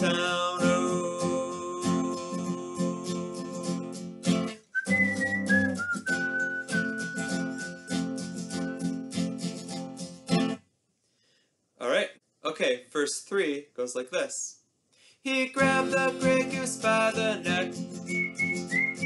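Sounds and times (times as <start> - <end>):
acoustic guitar strumming: 0.0 - 10.6, 15.6 - 19.0
high whistled melody: 4.6 - 9.1, 17.9 - 19.0.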